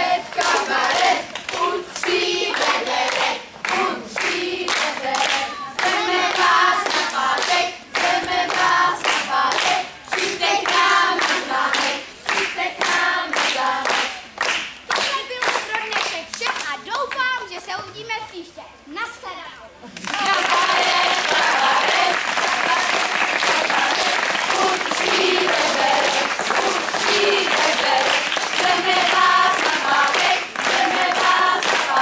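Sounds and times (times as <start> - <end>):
children singing: 0.0 - 13.8, 20.2 - 32.0
hands clapping in time: 0.3 - 17.2, 19.9 - 32.0.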